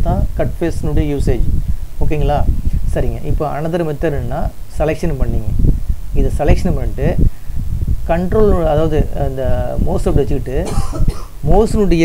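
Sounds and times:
person talking: 0:00.0 - 0:05.6, 0:06.2 - 0:07.3, 0:08.1 - 0:12.0
noisy breath: 0:02.6 - 0:02.9, 0:07.2 - 0:08.0.

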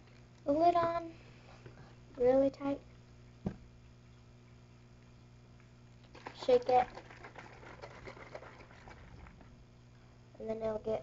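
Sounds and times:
small container being shaken: 0:06.1 - 0:09.6.

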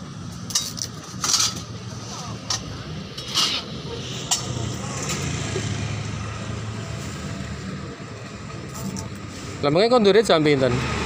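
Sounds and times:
vehicle engine humming: 0:00.0 - 0:11.0.

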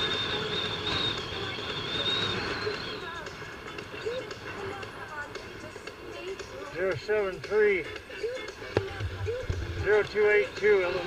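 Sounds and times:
low thumping and rumble: 0:08.7 - 0:10.6.

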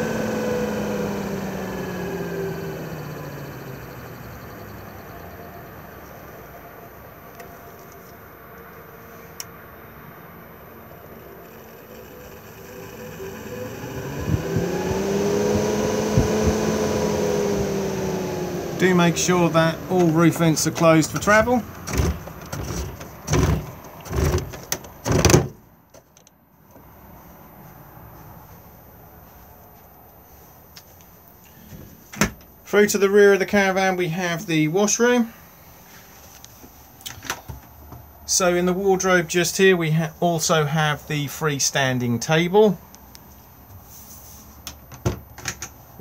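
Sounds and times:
roof vent winder cranking: 0:00.0 - 0:05.7, 0:10.9 - 0:25.5.

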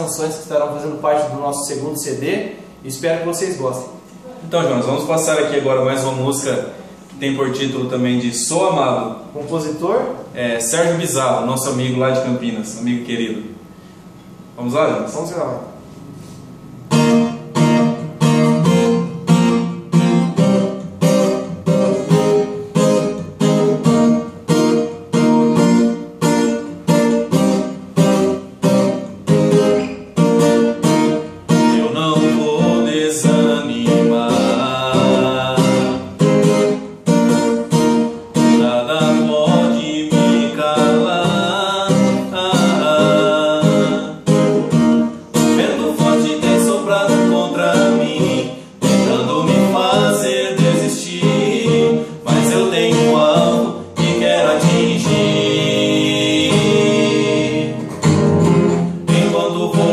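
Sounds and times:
acoustic guitar strumming: 0:15.8 - 0:59.9
man singing: 0:31.5 - 0:36.6, 0:38.4 - 0:44.5, 0:45.4 - 0:57.9, 0:59.1 - 0:59.9.

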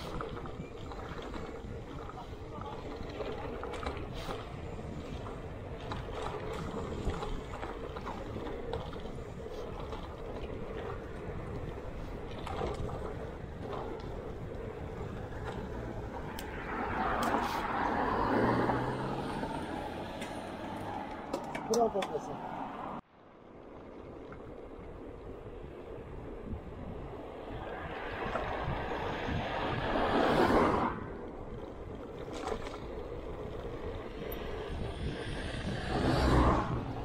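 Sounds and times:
wind on microphone: 0:00.0 - 0:20.6, 0:24.1 - 0:37.0
bicycle tyres on tarmac: 0:00.0 - 0:37.0
van engine approaching: 0:13.7 - 0:21.3
car passing close by: 0:15.3 - 0:21.3, 0:27.4 - 0:31.2, 0:34.1 - 0:37.0.

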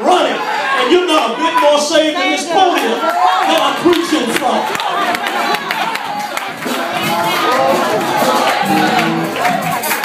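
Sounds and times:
congregation calling out and cheering: 0:00.0 - 0:10.0.

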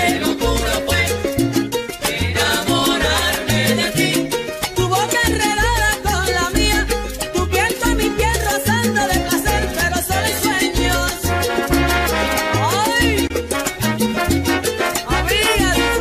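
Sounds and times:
salsa music: 0:00.0 - 0:16.0.

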